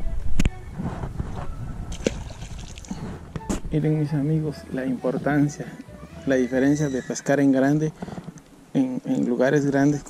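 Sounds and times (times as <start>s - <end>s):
wind rumble on microphone: 0.0s - 3.8s.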